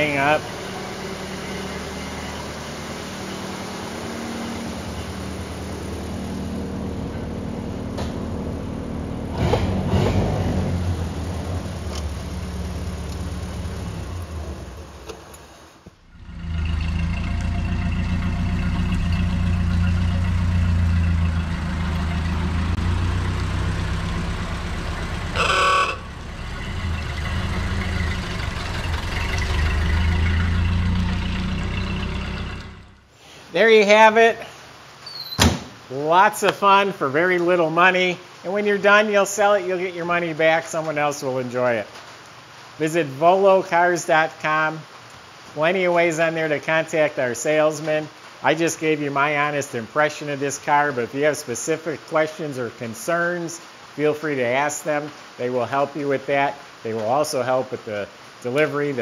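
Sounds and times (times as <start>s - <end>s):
car engine running: 0.0s - 33.1s
car horn honk: 25.3s - 26.2s.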